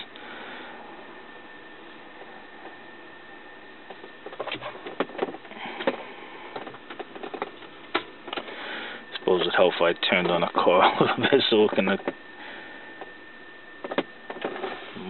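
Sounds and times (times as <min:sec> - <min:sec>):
steady low hiss: 0:00.0 - 0:15.0.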